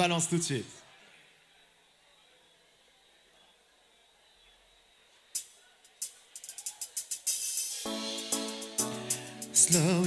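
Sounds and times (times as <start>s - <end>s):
cymbal strokes: 5.4s - 10.0s
band playing held chords: 6.4s - 10.0s.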